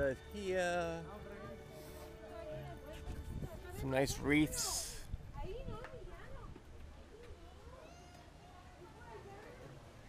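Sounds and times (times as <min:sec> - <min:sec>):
faint voices of people walking: 0:00.8 - 0:10.0.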